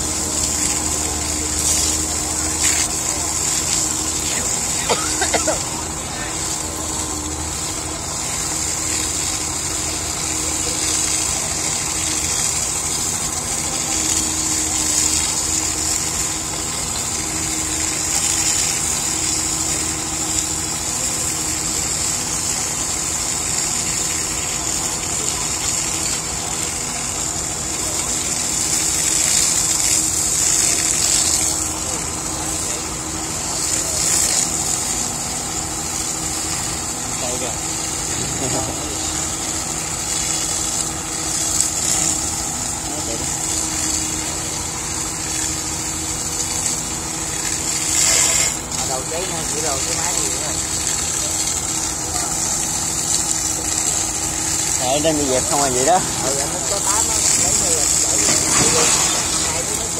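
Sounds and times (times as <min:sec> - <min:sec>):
engine running: 0:00.0 - 0:59.9
fire hose spraying water: 0:00.0 - 0:59.9.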